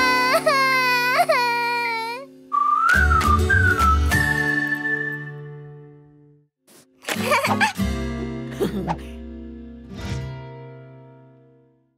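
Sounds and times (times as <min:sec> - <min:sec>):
whistle-like tune: 0:02.5 - 0:05.8.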